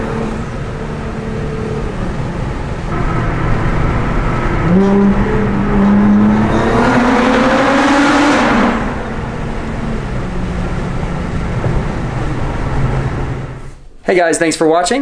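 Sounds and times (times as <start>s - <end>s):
car engine accelerating: 0.0s - 13.8s.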